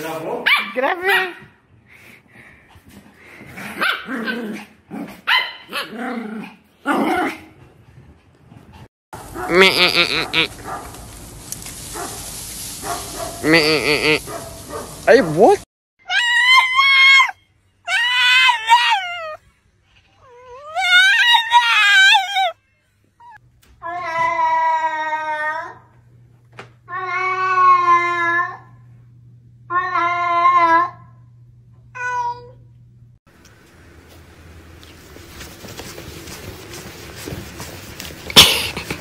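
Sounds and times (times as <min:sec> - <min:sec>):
goat bleating: 0:09.5 - 0:10.5, 0:13.4 - 0:14.2.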